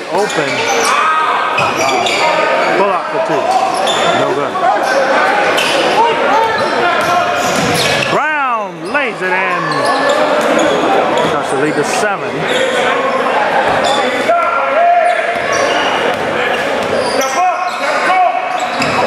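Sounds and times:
people talking in background: 0:00.0 - 0:19.0
basketball bouncing on hardwood floor: 0:16.1 - 0:17.0.

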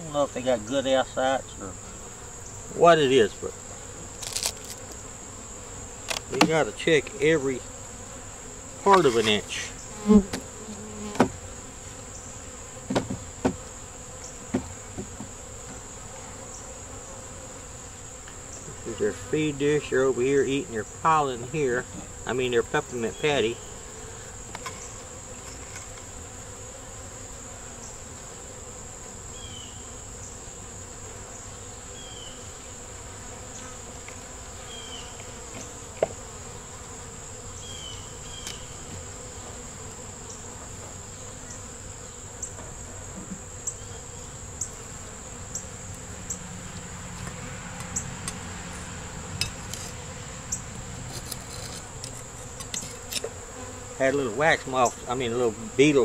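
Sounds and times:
honeybees humming: 0:00.0 - 0:56.0
metal tool scraping wooden frames: 0:08.9 - 0:09.6, 0:50.9 - 0:53.4.

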